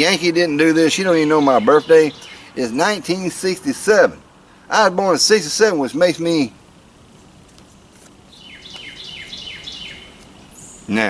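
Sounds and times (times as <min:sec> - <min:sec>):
songbird singing: 0:00.0 - 0:11.0.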